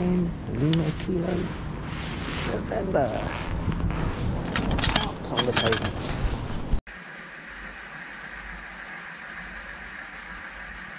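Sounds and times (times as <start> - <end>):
street and wind noise: 0.0 - 6.8
steady hiss: 6.9 - 10.9.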